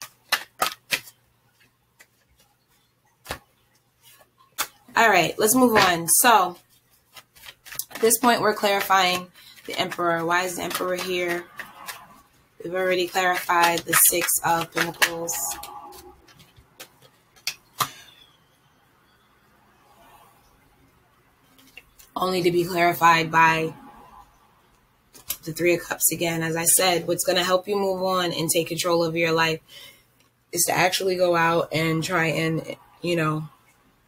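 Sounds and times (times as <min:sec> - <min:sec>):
cards being handled: 0:00.0 - 0:12.1, 0:12.7 - 0:18.1.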